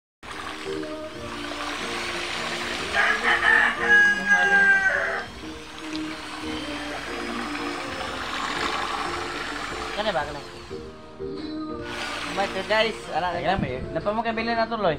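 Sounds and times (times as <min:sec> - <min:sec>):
electric drill stirring cement: 0:00.2 - 0:13.6
background music: 0:00.2 - 0:14.9
rooster crowing: 0:02.8 - 0:05.4.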